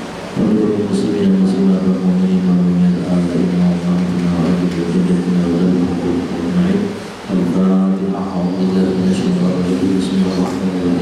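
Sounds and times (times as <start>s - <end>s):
man chanting into a microphone: 0.4s - 11.0s.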